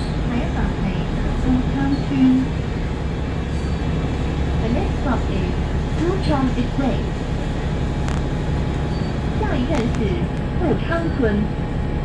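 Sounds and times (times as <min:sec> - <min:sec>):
bus engine drone inside cabin: 0:00.0 - 0:12.0.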